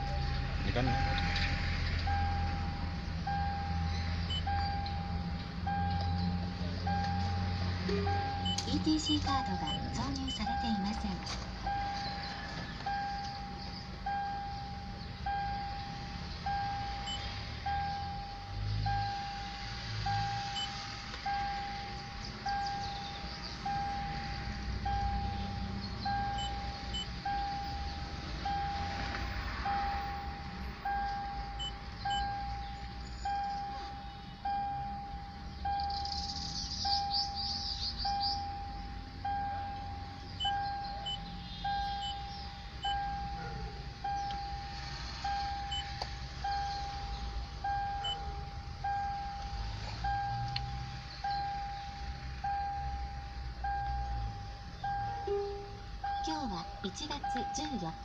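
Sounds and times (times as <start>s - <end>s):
car warning chime dinging: 0.0s - 58.0s.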